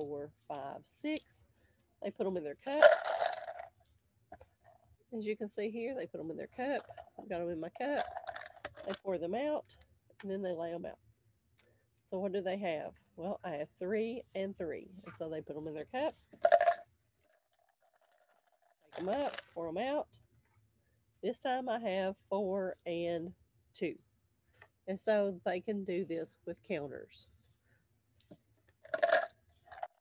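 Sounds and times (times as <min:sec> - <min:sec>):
woman's voice: 0:00.0 - 0:01.4, 0:02.0 - 0:03.0, 0:05.2 - 0:08.1, 0:08.8 - 0:11.0, 0:12.1 - 0:16.2, 0:19.0 - 0:20.0, 0:21.2 - 0:24.0, 0:24.9 - 0:27.2
plastic counters rattling into cup: 0:02.6 - 0:03.7, 0:07.8 - 0:09.1, 0:16.4 - 0:19.6, 0:28.7 - 0:30.0.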